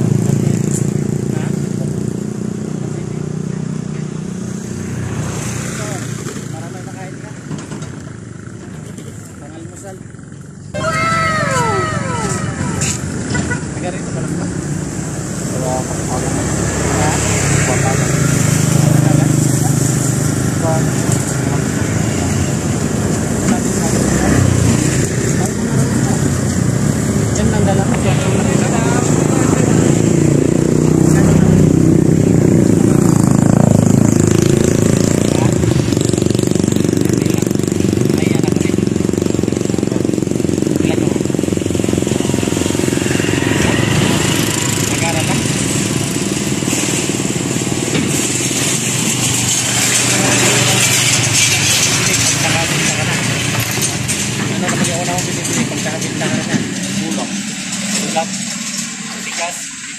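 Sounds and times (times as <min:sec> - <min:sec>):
steady background noise: 0:00.0 - 0:59.9
men talking: 0:05.7 - 0:07.7, 0:09.2 - 0:10.2, 0:10.8 - 0:32.8, 0:36.9 - 0:42.0, 0:44.2 - 0:45.9, 0:50.0 - 0:59.7.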